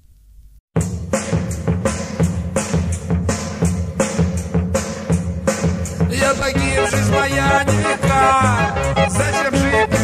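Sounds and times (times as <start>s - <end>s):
drum kit beat: 0.8s - 10.0s
rock band instrumental: 0.8s - 10.0s.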